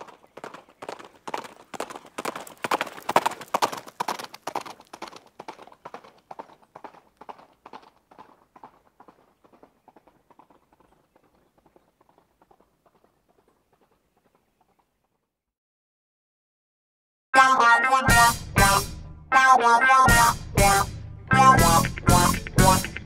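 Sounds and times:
horse hoofbeats clip-clop: 0:00.0 - 0:15.3.

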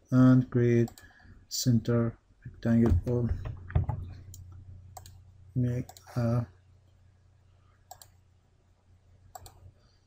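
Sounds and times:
low steady hum: 0:00.0 - 0:10.0
computer mouse click: 0:04.3 - 0:05.2, 0:07.9 - 0:08.2, 0:09.3 - 0:09.6.

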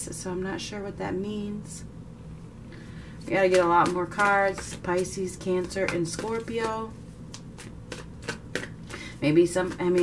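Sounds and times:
cards being shuffled: 0:07.3 - 0:09.0.

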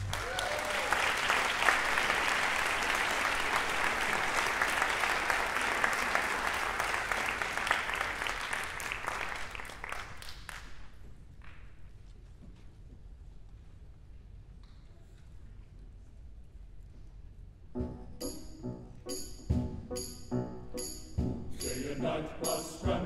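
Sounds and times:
audience applauding: 0:00.0 - 0:10.9.

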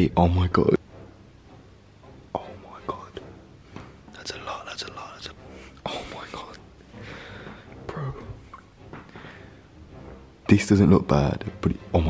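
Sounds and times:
man whispering: 0:02.3 - 0:03.3, 0:04.1 - 0:06.6.

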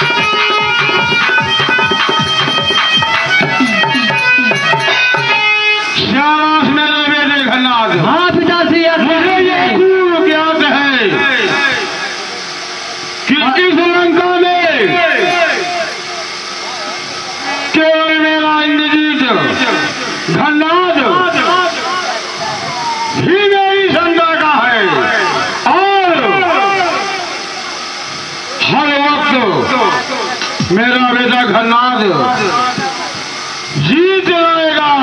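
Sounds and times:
loudspeaker hiss: 0:00.0 - 0:35.0
voice through distorted loudspeaker: 0:06.0 - 0:12.4, 0:13.2 - 0:35.0.

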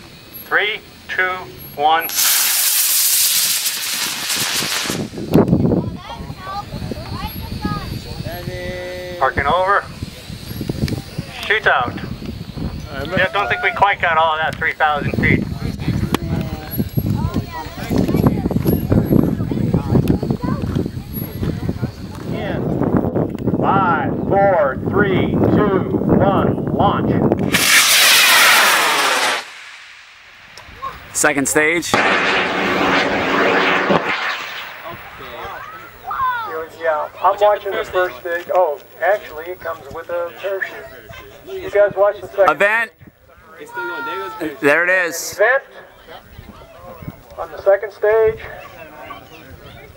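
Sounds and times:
rocket motor rushing hiss: 0:02.1 - 0:05.8, 0:27.4 - 0:36.6
voices: 0:05.3 - 0:22.8, 0:30.4 - 0:49.9.

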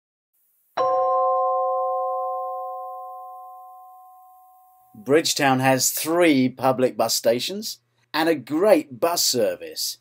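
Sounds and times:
electronic chime chord: 0:00.8 - 0:05.0.

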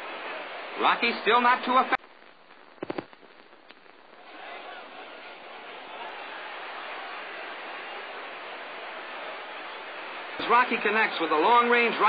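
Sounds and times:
arena crowd hubbub: 0:00.0 - 0:02.0, 0:03.9 - 0:12.0.

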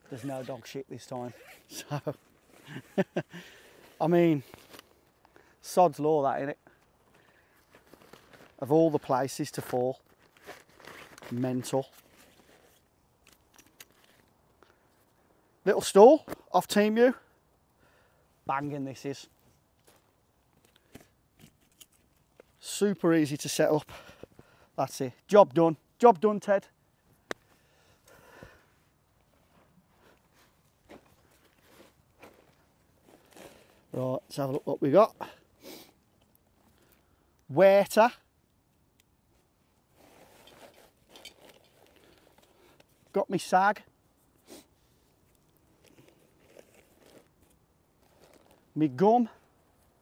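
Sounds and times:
man talking: 0:00.0 - 0:02.2, 0:04.0 - 0:04.5, 0:05.6 - 0:06.6, 0:08.6 - 0:10.0, 0:11.3 - 0:11.9, 0:15.6 - 0:17.3, 0:18.5 - 0:19.3, 0:22.6 - 0:23.9, 0:24.8 - 0:26.7, 0:33.9 - 0:35.4, 0:37.5 - 0:38.2, 0:43.1 - 0:43.8, 0:48.8 - 0:49.4
gear rustling and clicking: 0:10.0 - 0:15.0, 0:20.6 - 0:22.6, 0:40.0 - 0:43.1.

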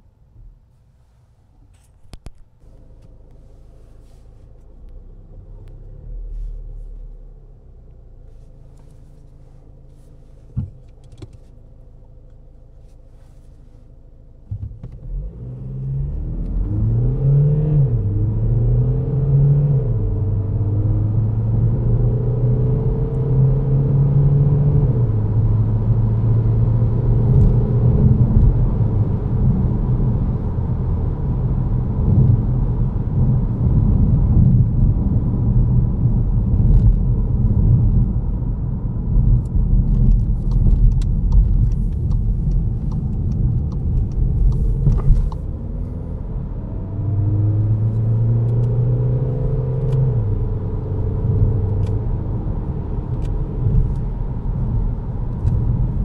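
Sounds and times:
road rumble: 0:00.0 - 0:56.0
diesel engine accelerating: 0:15.0 - 0:56.0.

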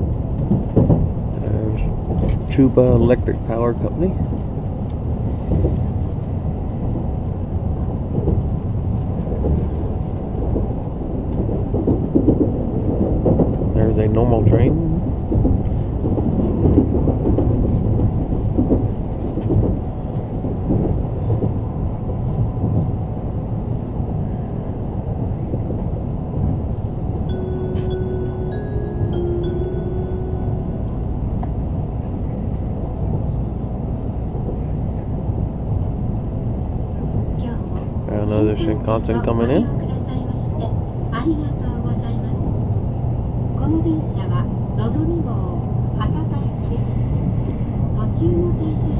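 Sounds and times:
train rumble from inside cabin: 0:00.0 - 0:48.9
stepped chime notes: 0:27.3 - 0:31.2.

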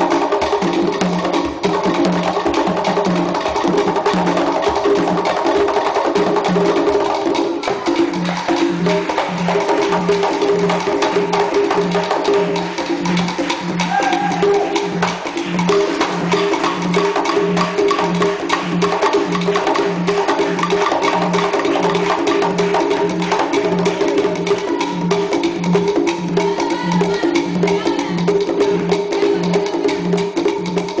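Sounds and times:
conga drums played by hand: 0:00.0 - 0:31.0.

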